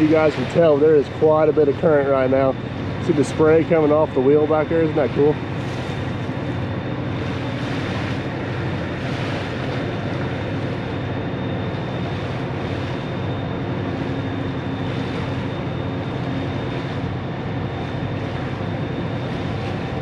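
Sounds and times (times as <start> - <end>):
riverboat engine drone: 0.0 - 20.0
wind and water noise: 0.0 - 20.0.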